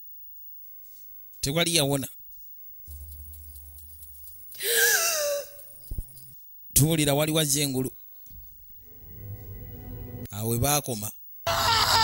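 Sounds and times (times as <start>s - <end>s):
faint low hum: 0.0s - 11.2s
breathy wheeze: 4.6s - 5.7s.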